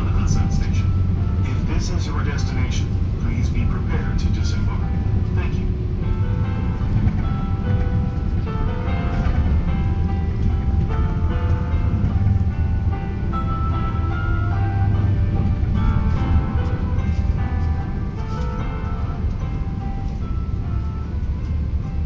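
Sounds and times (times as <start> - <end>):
train rumbling: 0.0 - 22.0
electronic chime melody: 4.6 - 21.2.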